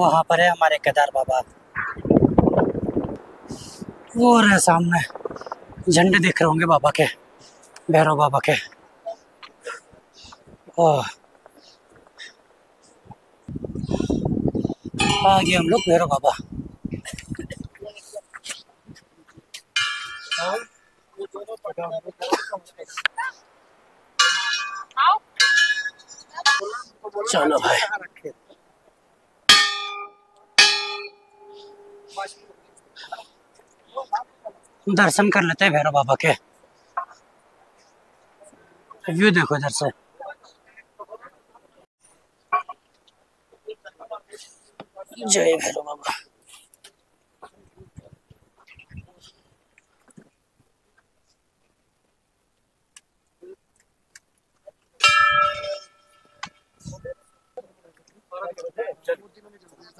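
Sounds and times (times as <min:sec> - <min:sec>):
temple bell struck by hand: 0:29.5 - 0:32.1, 0:55.0 - 0:56.5.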